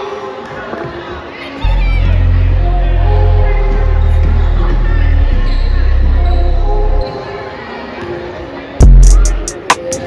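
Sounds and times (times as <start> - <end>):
voices in a hall: 0.0 - 10.0.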